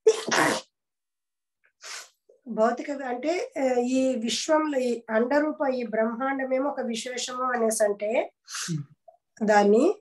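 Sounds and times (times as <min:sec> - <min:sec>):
person sneezing: 0:00.0 - 0:00.7.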